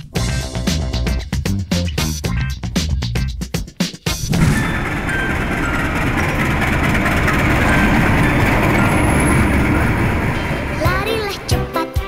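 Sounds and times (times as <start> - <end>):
passenger train rumbling past: 4.2 - 12.0.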